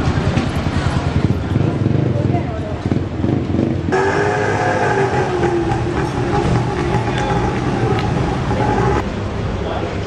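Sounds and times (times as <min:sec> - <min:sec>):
vehicle engine droning: 0:00.0 - 0:09.5
street traffic noise: 0:00.0 - 0:10.0.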